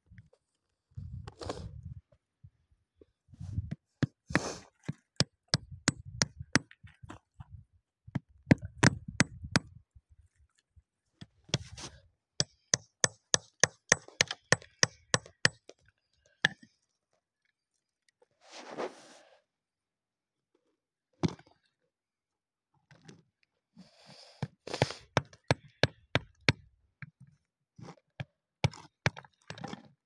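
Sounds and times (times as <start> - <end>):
hammer chipping at rock: 4.0 - 7.2, 8.1 - 9.8, 12.4 - 15.8, 25.0 - 26.7, 28.6 - 29.9.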